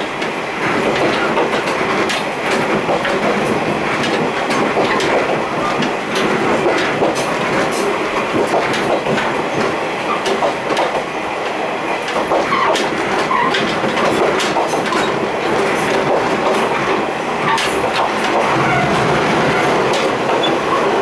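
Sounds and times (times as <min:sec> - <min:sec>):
train wheels roaring on rails: 0:00.0 - 0:21.0.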